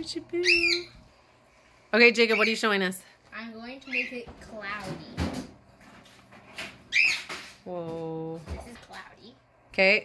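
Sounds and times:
pet bird chirp: 0.4s - 1.0s, 2.1s - 2.8s, 3.8s - 4.2s, 6.9s - 7.3s.

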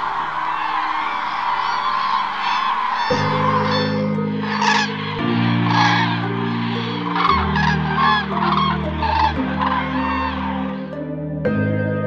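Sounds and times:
cranes calling: 0.0s - 11.0s
slow low music chords: 0.0s - 12.0s.

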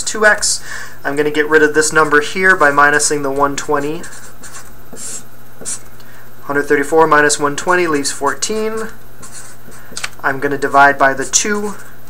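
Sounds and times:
marker pen writing: 2.0s - 5.8s, 7.6s - 10.2s.

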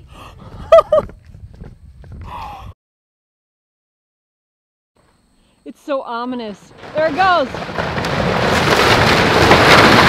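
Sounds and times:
wind rumble on microphone: 0.0s - 2.8s.

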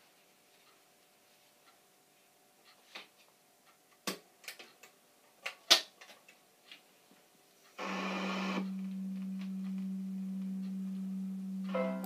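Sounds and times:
record player humming: 7.6s - 12.0s.

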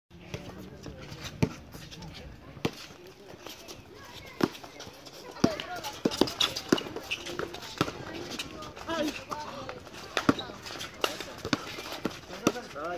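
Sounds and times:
shoes hitting the court: 0.2s - 12.9s
basketball bouncing on asphalt: 2.6s - 12.9s
players calling out: 3.5s - 12.9s.

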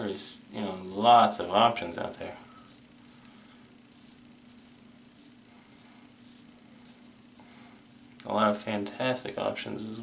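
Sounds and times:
razor scraping beard stubble: 2.6s - 3.3s, 3.9s - 8.2s.

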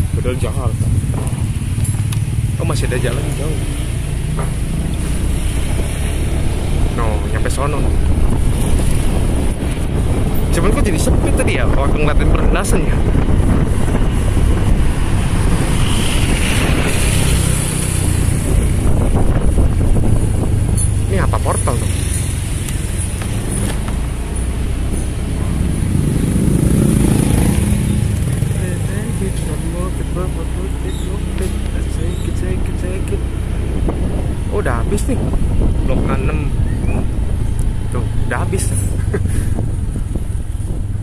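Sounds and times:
vehicle driving rumble: 0.0s - 41.0s
wind noise on microphone: 0.0s - 41.0s.

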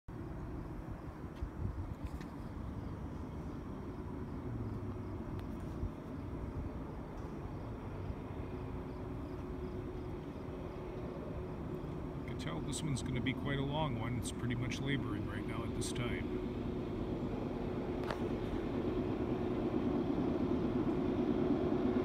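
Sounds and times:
distant diesel locomotives rumbling: 0.1s - 22.0s
faint steady hum: 0.1s - 22.0s.

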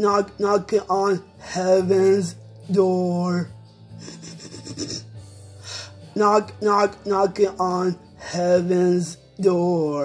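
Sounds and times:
man breathing: 5.2s - 6.1s.

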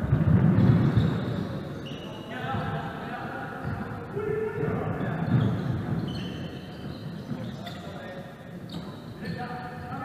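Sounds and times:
basketball bouncing on wooden court: 0.0s - 2.9s, 4.6s - 7.9s.

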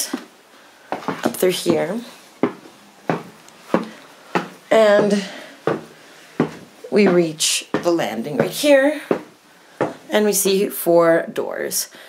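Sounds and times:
footsteps on wooden stairs: 0.9s - 10.1s.

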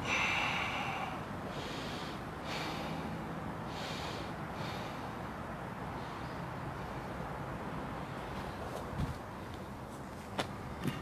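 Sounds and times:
person taking forceful breaths: 0.0s - 7.3s.

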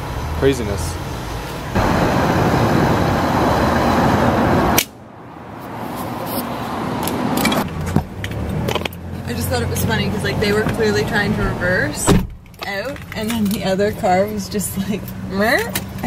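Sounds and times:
steady rushing noise: 1.6s - 7.6s.

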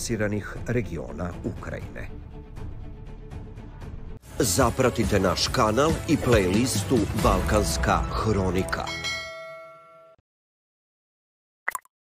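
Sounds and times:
bell-like ding: 8.8s - 10.2s.

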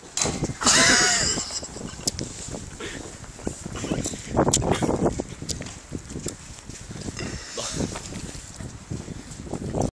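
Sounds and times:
person laughing: 0.6s - 2.2s, 7.2s - 7.9s.

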